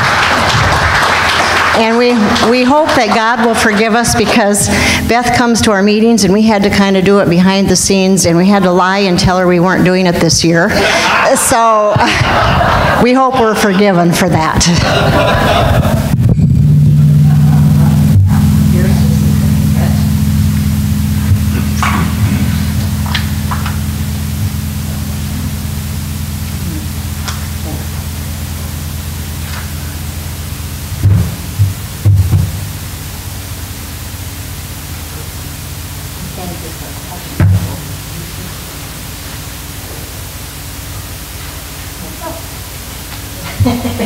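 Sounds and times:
electrical hum and hiss: 0:00.0 - 0:44.0
dull low thumps: 0:14.8 - 0:41.3.

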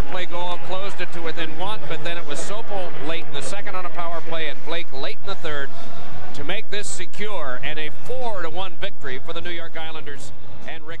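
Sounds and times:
sports commentator talking: 0:00.0 - 0:11.0.

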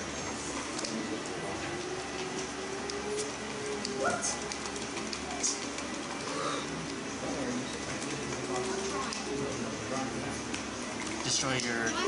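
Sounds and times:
indistinct background chatter: 0:00.6 - 0:12.0.

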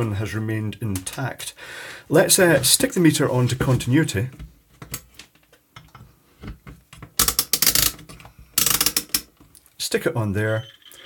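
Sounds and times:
rotary selector clicking: 0:08.6 - 0:09.3.

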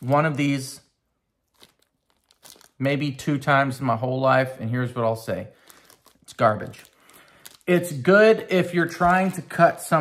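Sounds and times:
plastic bag crinkling: 0:00.0 - 0:00.8, 0:01.4 - 0:03.2, 0:05.3 - 0:10.0.

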